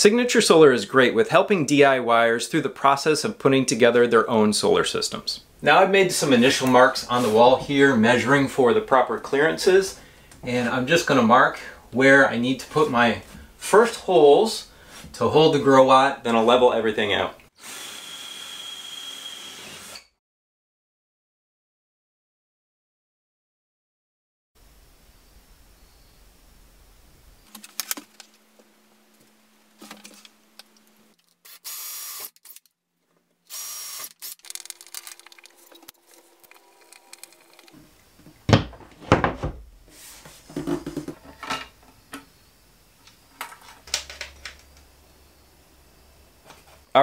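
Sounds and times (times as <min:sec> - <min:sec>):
cordless drill boring: 0:17.6 - 0:20.2, 0:31.4 - 0:32.6, 0:33.5 - 0:37.8
metal box knocks and clatter: 0:40.5 - 0:41.6.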